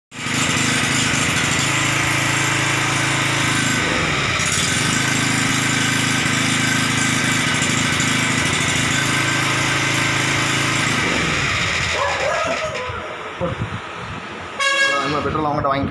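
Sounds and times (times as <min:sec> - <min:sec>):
portable generator running: 0:00.1 - 0:15.5.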